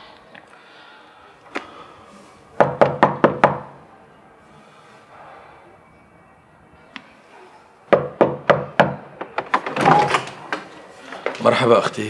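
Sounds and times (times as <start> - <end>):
knocking on wooden door: 2.6 - 3.7, 7.9 - 9.5.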